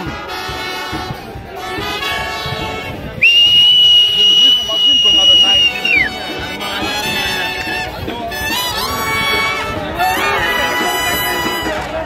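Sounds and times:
brass band music: 0:00.0 - 0:12.0
whistle blast: 0:03.2 - 0:06.2.

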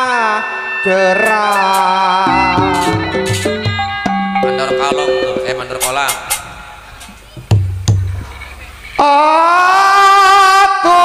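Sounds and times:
person singing a wavering line: 0:00.0 - 0:04.0
sharp percussive strikes: 0:00.0 - 0:06.9
instrumental ensemble music: 0:00.0 - 0:08.2
low drum beats: 0:02.3 - 0:06.2.

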